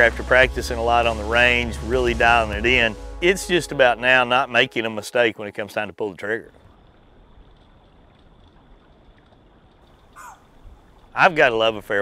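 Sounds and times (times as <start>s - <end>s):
outdoor background hiss: 0.0s - 12.0s
animal call falling in pitch: 10.1s - 10.5s.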